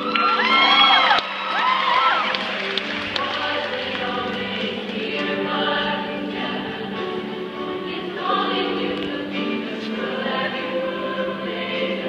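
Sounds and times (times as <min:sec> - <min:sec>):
choir singing pop song: 0:02.8 - 0:12.0.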